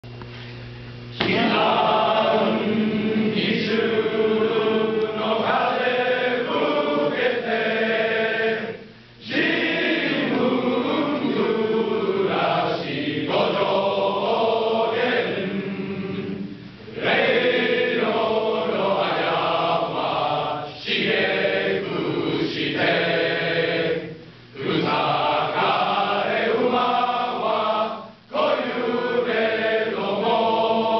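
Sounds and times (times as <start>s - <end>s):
men's choir singing: 1.2s - 30.9s.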